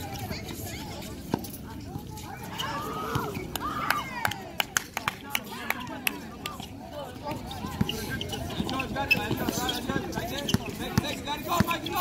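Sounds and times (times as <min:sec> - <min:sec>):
sneakers squeaking on court: 0:00.0 - 0:03.6, 0:05.8 - 0:12.0
players' voices: 0:00.0 - 0:12.0.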